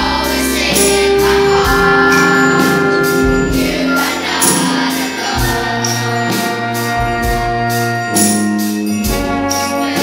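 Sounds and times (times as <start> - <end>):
wind band playing a slow ballad: 0.2 - 10.0
choir singing sustained chords: 0.3 - 7.1
bright cymbal splash: 0.7 - 5.6
low bass note: 0.8 - 5.1.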